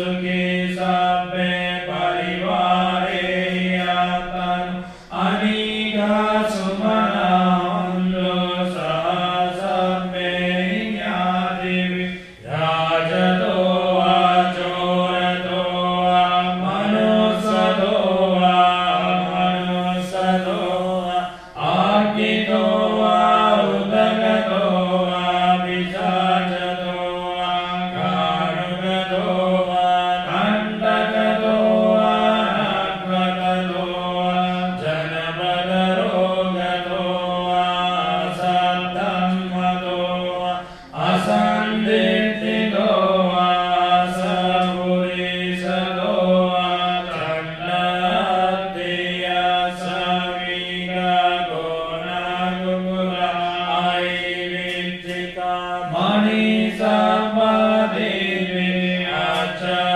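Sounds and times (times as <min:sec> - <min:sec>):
person chanting: 0:00.0 - 0:59.9.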